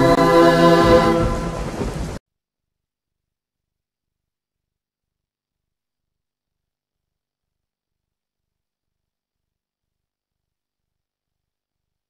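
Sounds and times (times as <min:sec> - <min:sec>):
held musical chord: 0:00.0 - 0:01.8
rain and thunder sound effect: 0:00.0 - 0:02.2.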